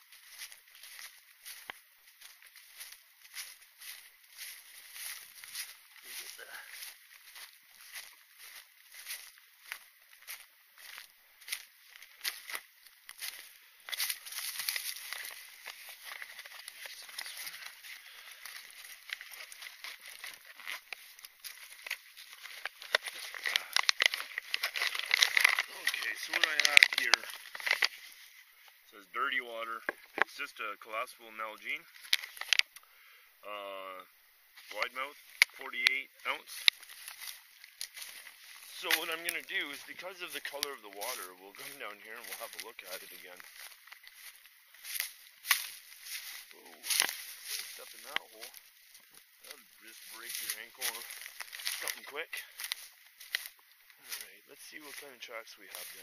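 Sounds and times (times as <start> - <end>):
footsteps through dry leaves: 0.0 - 28.5, 31.8 - 32.7, 34.6 - 56.0
plastic bag crinkling: 2.7 - 28.2, 31.9 - 32.7, 35.4 - 48.6, 49.5 - 53.6
backpack rustling: 13.9 - 28.2.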